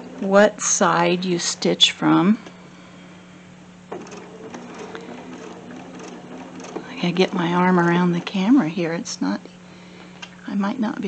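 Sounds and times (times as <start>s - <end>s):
sewing machine stitching: 3.9s - 8.5s.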